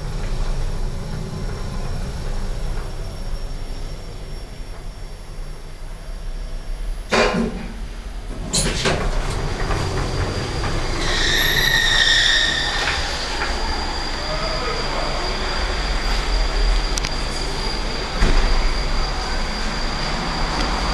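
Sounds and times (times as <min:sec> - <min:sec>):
steady lift hum: 0:00.0 - 0:20.9
lift doors thumping shut: 0:07.1 - 0:11.8
lift doors squealing open: 0:07.6 - 0:20.9.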